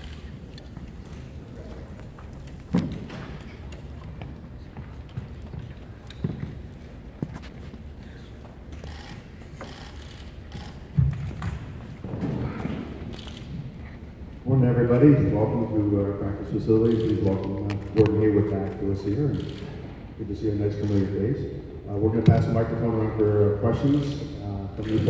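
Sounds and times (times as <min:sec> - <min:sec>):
room noise in a large hall: 0:00.0 - 0:25.0.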